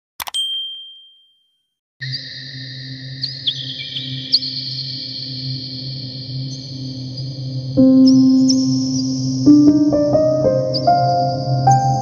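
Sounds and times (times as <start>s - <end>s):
notification bell ding: 0.3s - 1.4s.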